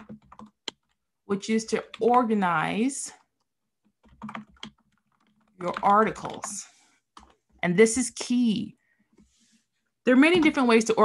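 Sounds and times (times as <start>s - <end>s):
computer keyboard typing: 0.0s - 2.6s, 3.2s - 8.5s.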